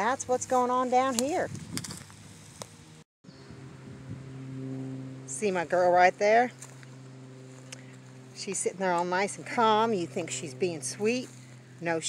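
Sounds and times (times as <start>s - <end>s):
faint outdoor background noise: 0.0s - 12.0s.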